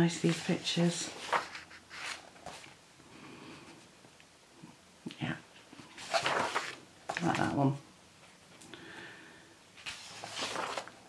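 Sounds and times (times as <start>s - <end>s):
paper page turning: 0.2s - 2.8s, 6.0s - 7.4s, 9.8s - 11.0s.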